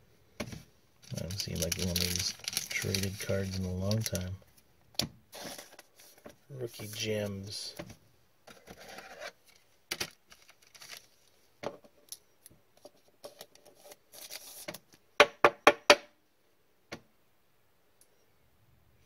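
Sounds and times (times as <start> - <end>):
plastic rubbing and scraping: 8.5 - 11.0.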